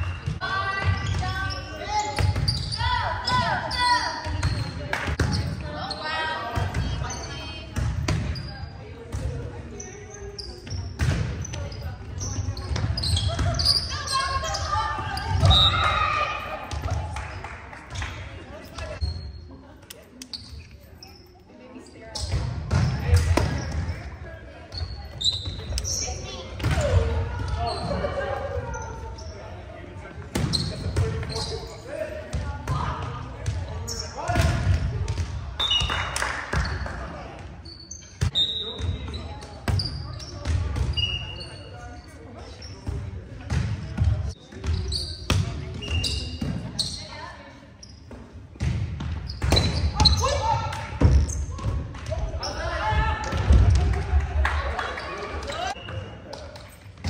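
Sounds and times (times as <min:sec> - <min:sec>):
sneaker squeaks: 0:00.0 - 0:17.0, 0:17.9 - 0:53.4, 0:54.8 - 0:57.0.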